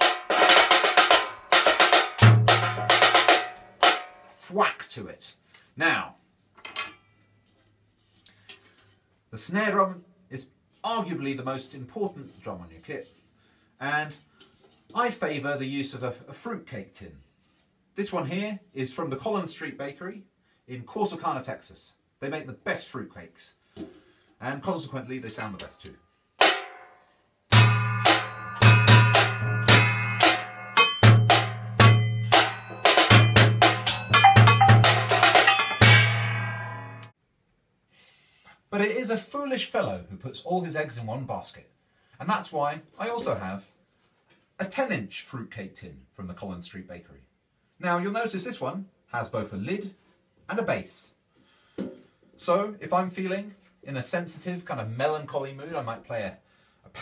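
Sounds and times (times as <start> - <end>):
paint tin bass drum thudding: 0.0 - 4.1, 27.5 - 37.0
metal trays struck: 0.0 - 4.3, 26.4 - 37.1
metallic tin snare drum hits: 0.0 - 4.4, 26.4 - 37.1.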